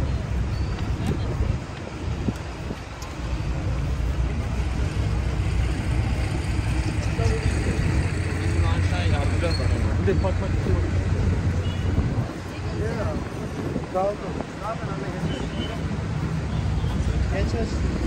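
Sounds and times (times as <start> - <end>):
passers-by talking: 0.0 - 18.0
road traffic rumble: 0.0 - 18.0.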